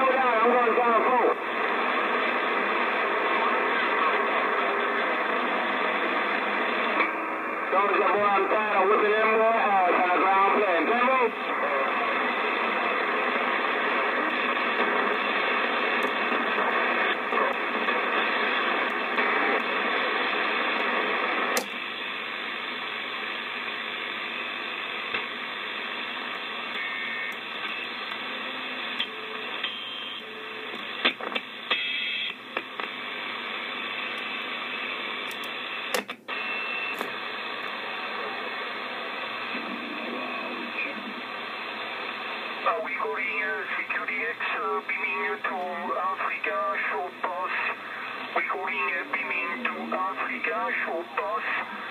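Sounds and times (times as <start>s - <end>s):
faint garbled radio voices: 0.0s - 51.9s
radio static hiss: 0.0s - 51.9s.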